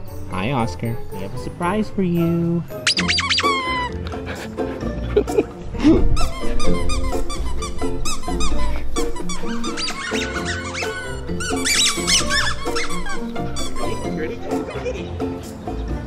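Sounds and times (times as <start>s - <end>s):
background music with steady beat: 0.0s - 16.0s
dog toy squeaking: 2.8s - 4.0s, 6.2s - 14.2s.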